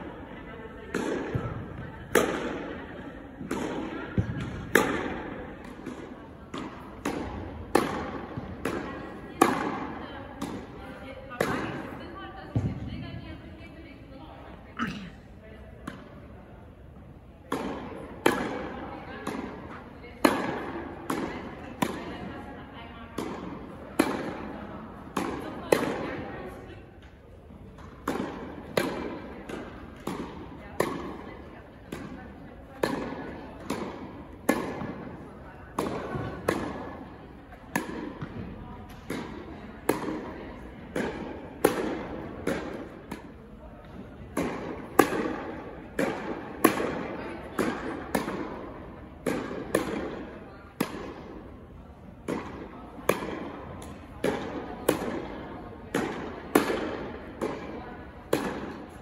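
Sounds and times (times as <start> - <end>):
tennis balls bouncing on court: 0.0 - 13.8, 15.6 - 59.0
tennis balls struck by rackets: 0.8 - 13.4, 15.7 - 59.0.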